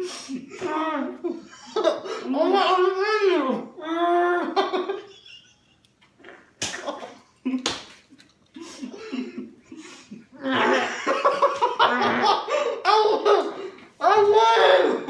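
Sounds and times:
boys laughing: 0.3 - 2.9, 4.3 - 5.9, 8.6 - 15.0.

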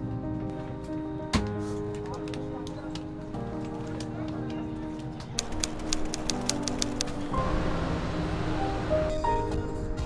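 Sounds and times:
music with sustained notes: 0.0 - 10.0
sharp ticks: 5.4 - 7.2.

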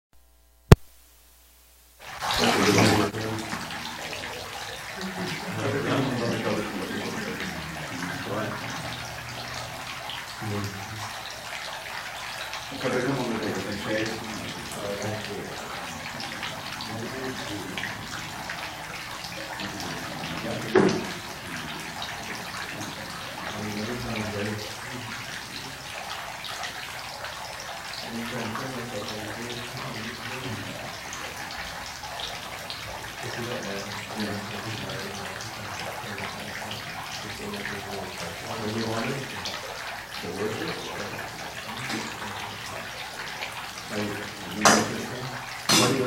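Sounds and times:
steady background hiss: 0.2 - 46.0
sharp knock: 45.7 - 46.0.

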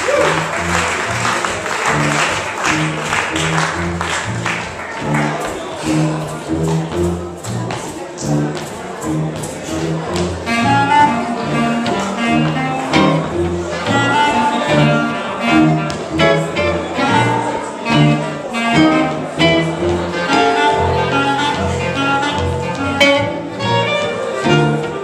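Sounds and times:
clarinet melody: 0.0 - 7.6, 8.2 - 25.0
plucked upright double bass: 0.0 - 25.0.

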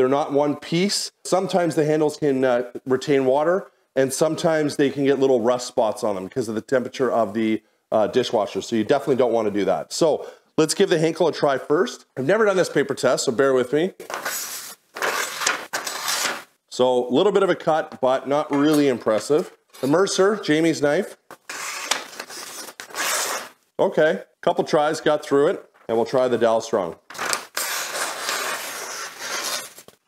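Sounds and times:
knife tearing through paper: 14.1 - 16.5, 21.3 - 23.6, 27.1 - 30.0.

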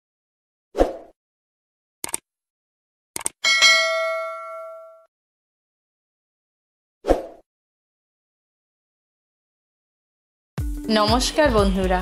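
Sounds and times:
notification bell ding: 3.4 - 5.1.

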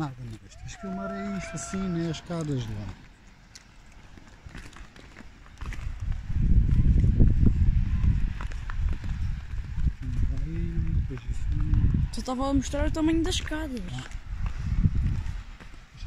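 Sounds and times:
footsteps on concrete steps: 1.7 - 12.4, 13.0 - 15.9
low rumble on microphone: 5.6 - 16.0.

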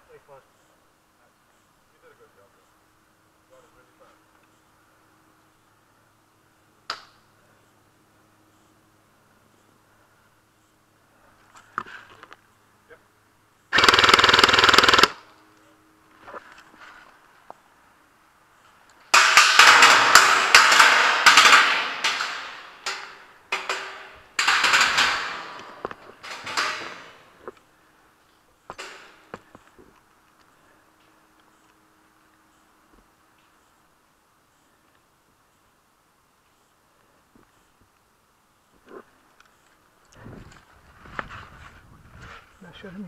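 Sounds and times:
airsoft guns firing full auto: 13.7 - 15.3, 19.1 - 27.2.

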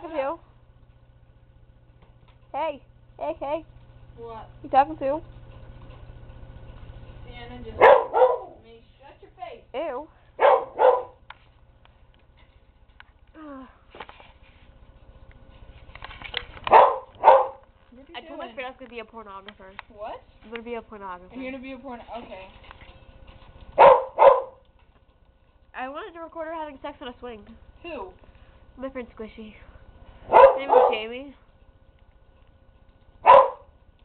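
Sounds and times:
dog barking: 7.8 - 8.6, 10.4 - 11.2, 16.7 - 17.6, 23.8 - 24.6, 30.2 - 31.2, 33.2 - 33.7.

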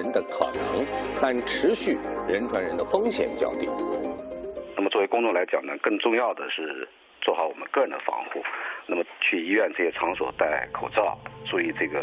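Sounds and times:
man speaking: 0.0 - 3.8, 4.8 - 12.0.

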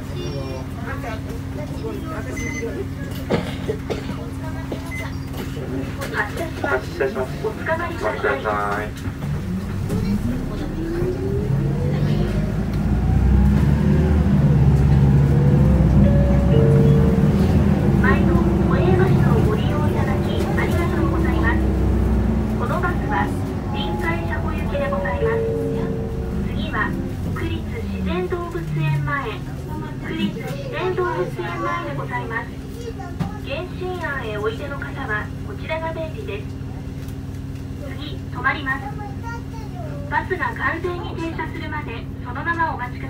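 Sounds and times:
bus diesel engine accelerating: 0.0 - 43.0.

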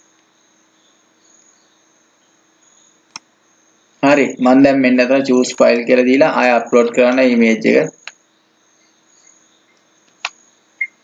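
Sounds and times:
faint background hiss: 0.0 - 11.0
high-pitched whine: 0.0 - 11.0.

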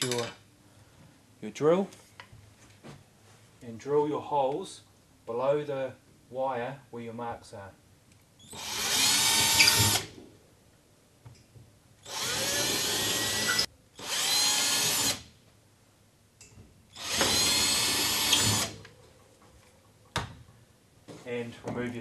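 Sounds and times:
cordless drill drilling into wall: 8.5 - 10.1, 12.0 - 15.3, 16.9 - 18.8.

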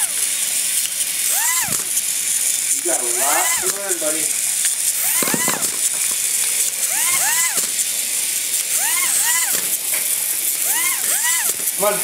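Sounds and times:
gear motors hissing: 0.0 - 12.0
toy robots chirping: 0.0 - 12.0.

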